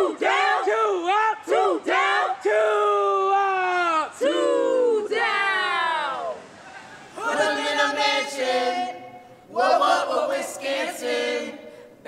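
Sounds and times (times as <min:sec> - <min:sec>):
group chanting in held notes: 0:07.2 - 0:12.0.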